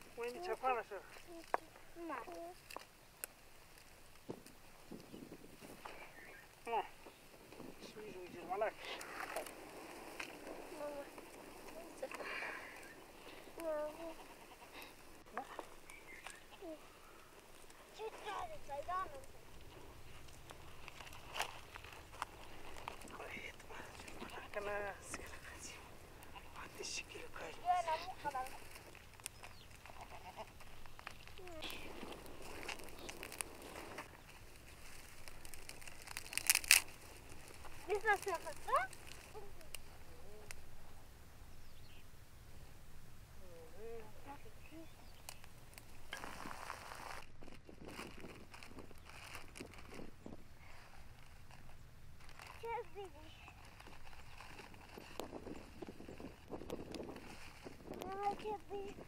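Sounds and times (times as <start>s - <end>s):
adults and child talking: 0.0s - 2.8s, 7.7s - 15.7s, 16.3s - 29.0s, 37.6s - 40.6s, 52.5s - 53.6s, 57.9s - 59.0s.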